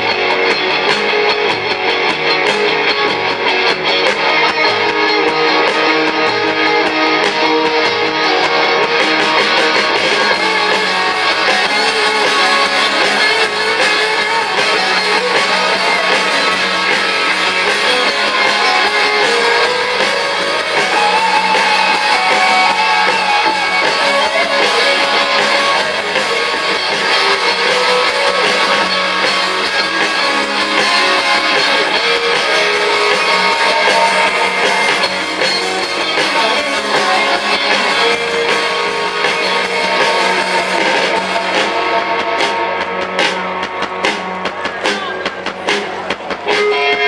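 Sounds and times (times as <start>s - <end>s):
live rock band playing: 0.0s - 47.0s.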